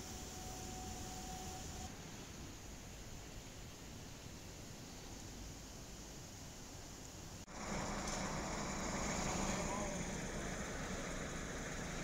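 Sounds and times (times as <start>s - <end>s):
steady hiss: 0.0s - 12.0s
traffic: 5.2s - 12.0s
people talking: 9.4s - 10.5s.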